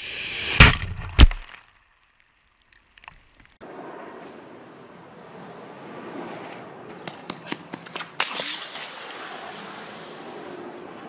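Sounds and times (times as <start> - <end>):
outdoor background noise: 0.0 - 11.0
sharp crack: 0.3 - 1.9.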